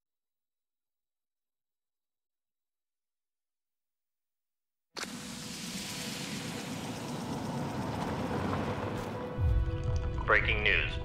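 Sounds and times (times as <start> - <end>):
car driving past: 6.2 - 10.2.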